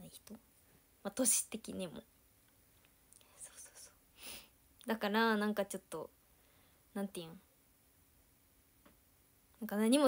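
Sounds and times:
woman speaking: 0:00.0 - 0:00.4, 0:01.0 - 0:02.1, 0:04.8 - 0:06.2, 0:06.9 - 0:07.5, 0:09.6 - 0:10.0
woman breathing softly: 0:04.1 - 0:04.6, 0:06.2 - 0:06.9.

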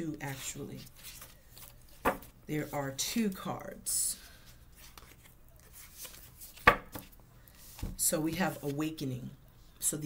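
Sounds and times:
cards being handled: 0:00.8 - 0:02.4, 0:04.4 - 0:08.7.

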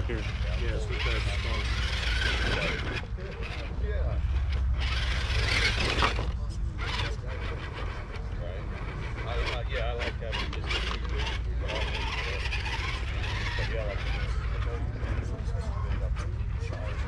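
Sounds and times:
toy truck motor whirring: 0:00.0 - 0:17.0.

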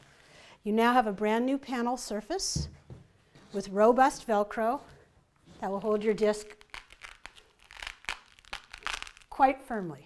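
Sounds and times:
velcro crackling and rasping: 0:05.6 - 0:09.4.

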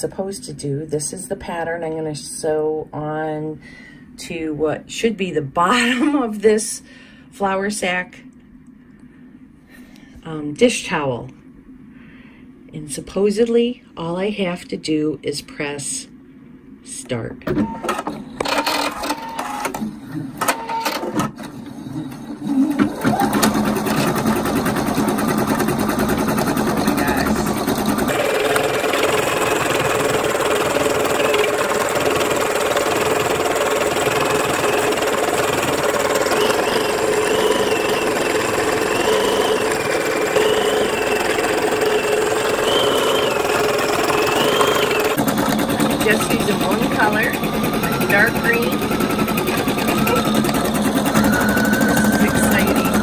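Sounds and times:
sewing machine stitching: 0:20.5 - 0:53.0
sewing machine clicks: 0:23.0 - 0:53.0.

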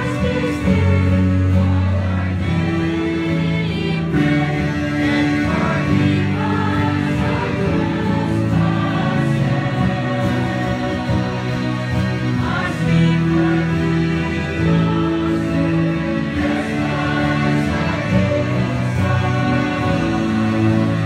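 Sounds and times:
electronic keyboard playing hymn chords: 0:00.0 - 0:21.0
voices singing: 0:00.0 - 0:21.0.

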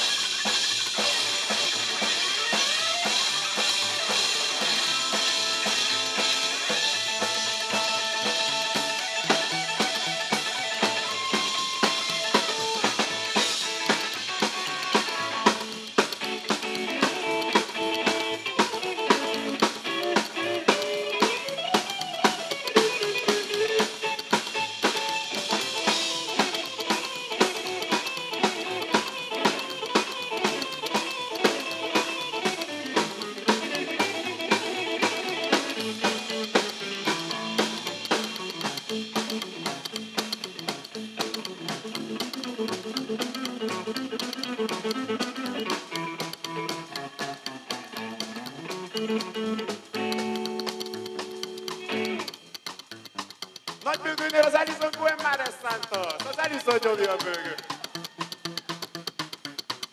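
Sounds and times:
drum kit steady beat: 0:00.0 - 0:59.9
electric guitar lines: 0:00.0 - 0:59.9.

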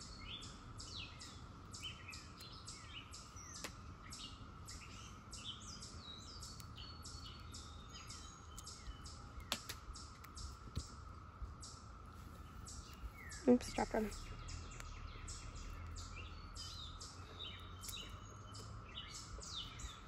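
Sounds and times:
birds chirping: 0:00.0 - 0:20.0.

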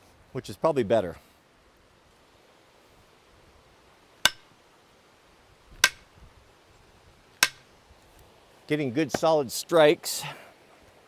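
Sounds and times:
hatchet striking wooden handle: 0:04.2 - 0:04.5, 0:05.8 - 0:06.1, 0:07.4 - 0:07.6.

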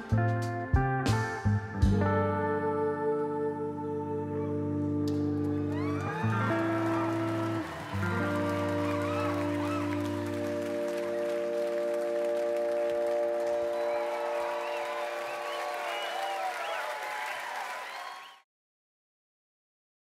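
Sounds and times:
audience applauding and cheering: 0:05.1 - 0:18.4.

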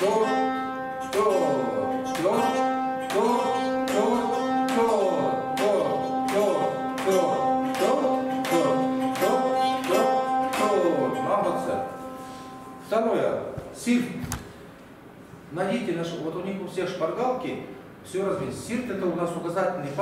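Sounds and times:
plucked zithers repeating a note: 0:00.0 - 0:13.6.

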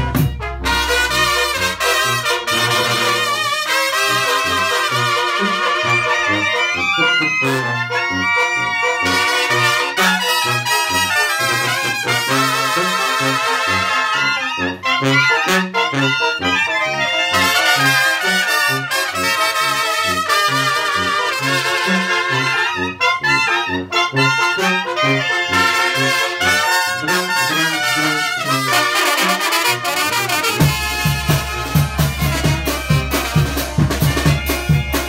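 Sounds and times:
bass drum beat: 0:00.0 - 0:01.1, 0:30.6 - 0:35.0
snare drums: 0:00.0 - 0:05.7, 0:28.6 - 0:35.0
trumpets trombones and clarinets: 0:00.0 - 0:35.0
tuba bass line: 0:00.0 - 0:35.0.

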